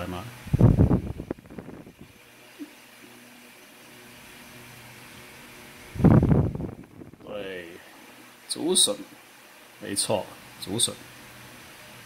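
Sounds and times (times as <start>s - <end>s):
faint mechanical hum: 0.0s - 12.0s.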